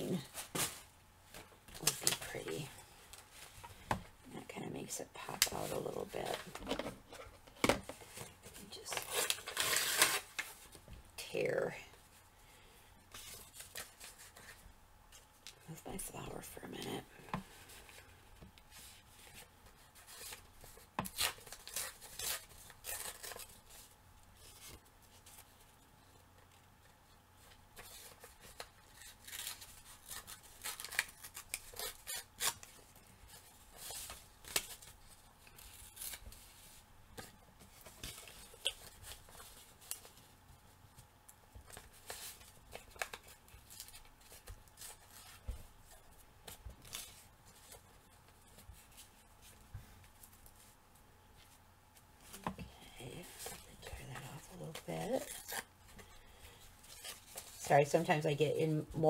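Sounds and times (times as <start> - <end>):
paper tearing and rustling: 8.2 - 10.7, 19.2 - 25.5, 27.8 - 40.2.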